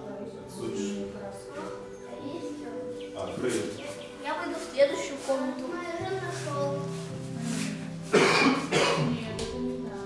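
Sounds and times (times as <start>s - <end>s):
background music: 0.0s - 10.0s
person coughing: 8.1s - 9.2s.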